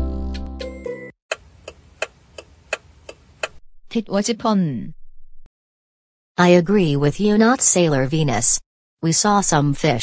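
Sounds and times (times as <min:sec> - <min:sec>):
clock ticking: 0:01.3 - 0:03.6.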